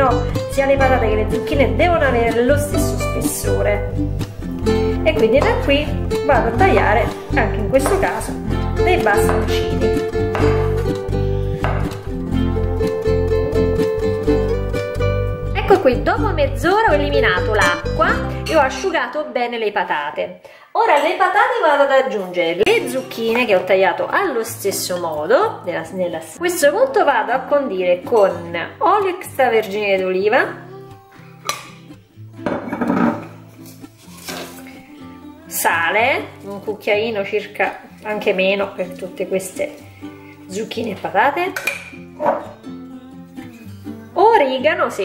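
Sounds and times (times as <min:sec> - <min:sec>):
plucked string music: 0:00.0 - 0:18.9, 0:30.6 - 0:36.6, 0:37.8 - 0:45.0
kitchenware clattering and scraping: 0:32.4 - 0:34.7, 0:41.5 - 0:42.6.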